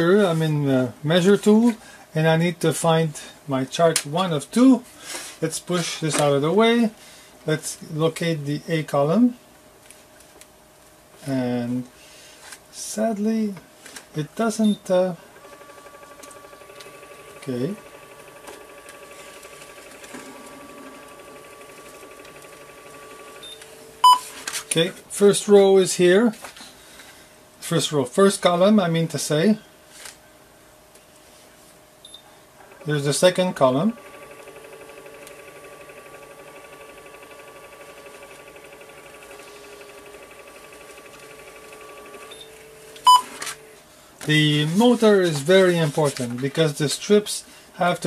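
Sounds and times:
motor whine with flutter: 15.0s - 24.7s, 32.7s - 43.8s.

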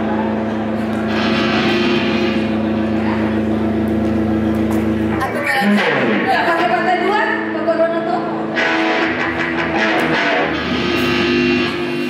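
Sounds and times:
electric guitar and bass drone: 0.0s - 12.0s.

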